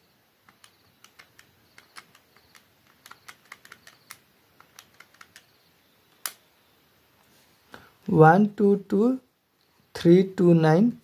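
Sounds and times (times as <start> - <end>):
calculator keys clicking: 0.4 - 5.5.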